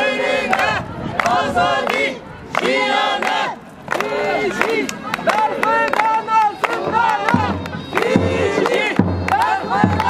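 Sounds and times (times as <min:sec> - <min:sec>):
crowd chanting in unison: 0:00.0 - 0:10.0
handclaps: 0:00.5 - 0:10.0.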